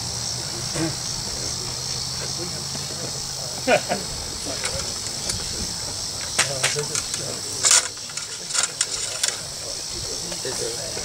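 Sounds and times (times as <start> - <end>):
insects droning: 0.0 - 11.0
metallic clicks of muskets: 6.2 - 9.4.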